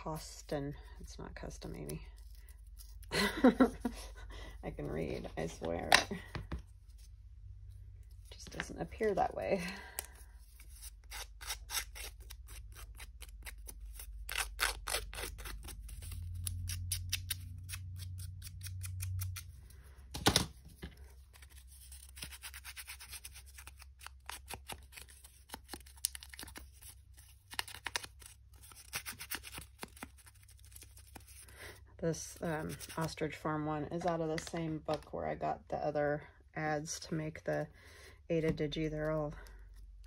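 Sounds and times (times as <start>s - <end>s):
scissors snipping paper: 10.8s - 19.5s, 21.4s - 31.4s.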